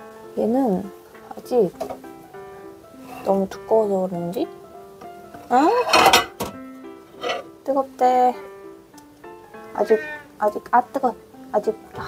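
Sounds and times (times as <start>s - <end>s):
plate scraping on glass turntable: 3.0s - 3.4s, 5.8s - 6.4s, 7.1s - 7.5s.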